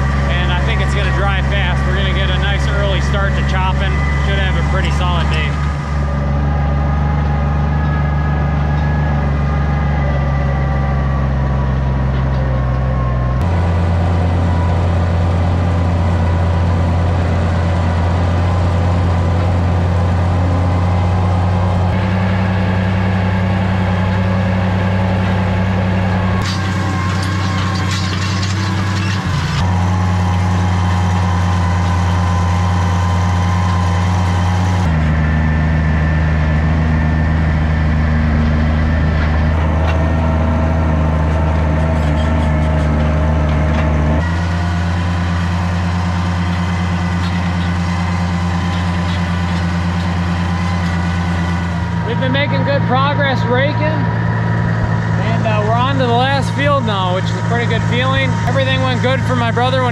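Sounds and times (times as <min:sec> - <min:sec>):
tractor engine running: 0:00.0 - 0:59.9.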